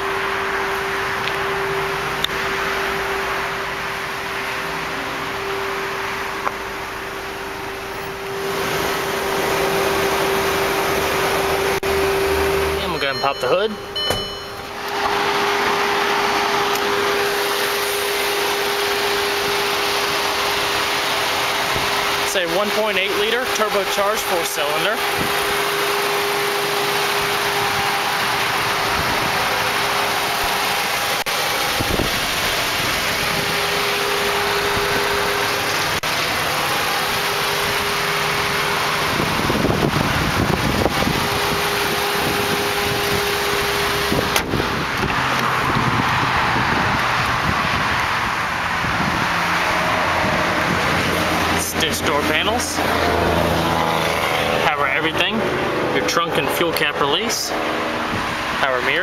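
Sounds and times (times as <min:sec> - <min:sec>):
car engine idling: 0:00.0 - 0:59.0.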